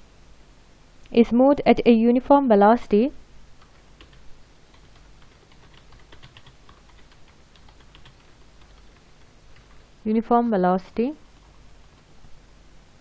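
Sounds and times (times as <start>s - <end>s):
computer keyboard typing: 3.6s - 9.9s.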